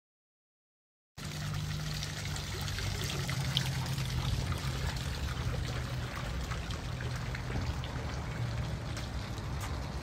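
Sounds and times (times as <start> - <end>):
fountain water splashing: 1.2 - 10.0.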